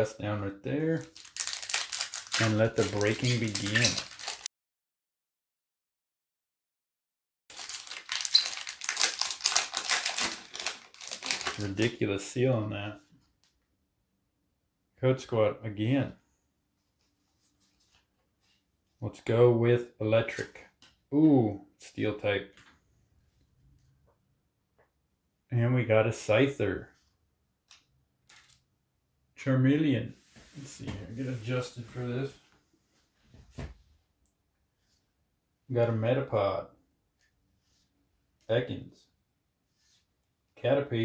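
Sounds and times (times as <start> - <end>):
foil wrapper crinkling and tearing: 0.9 - 4.5, 7.5 - 11.9
trading cards sliding: 2.4 - 4.5.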